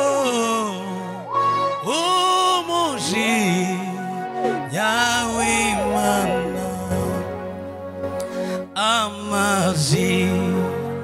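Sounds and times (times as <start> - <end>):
man singing with vibrato: 0.0 - 7.5, 8.6 - 11.0
held backing chords: 0.0 - 11.0.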